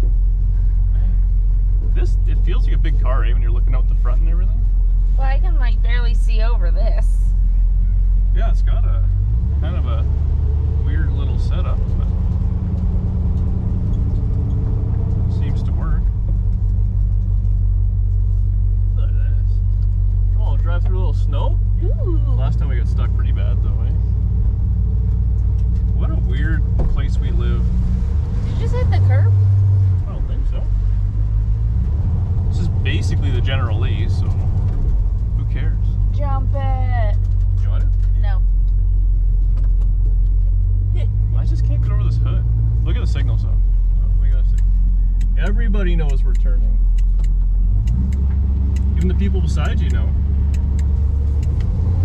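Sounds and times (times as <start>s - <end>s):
car engine droning inside cabin: 0.0s - 52.0s.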